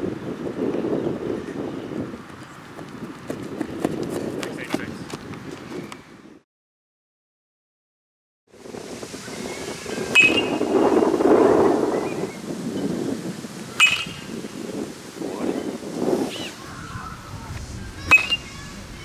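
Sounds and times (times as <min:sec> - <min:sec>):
metal bat pinging balls: 0:13.8 - 0:14.3, 0:18.1 - 0:18.4.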